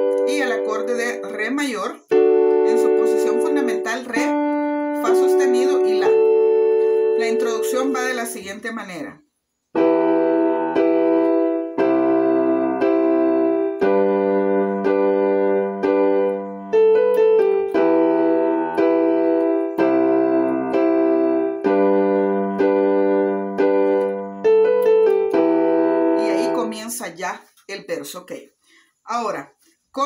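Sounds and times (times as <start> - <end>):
piano keyboard chords and melody: 0.0 - 9.0, 9.7 - 27.2.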